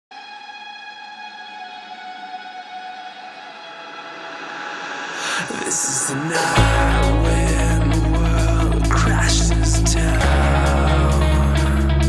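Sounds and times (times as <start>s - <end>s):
sustained synthesizer note: 6.2s - 12.0s.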